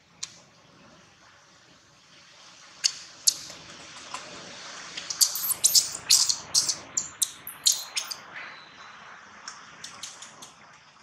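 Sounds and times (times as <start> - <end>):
baby monkey screaming: 5.2 - 8.2.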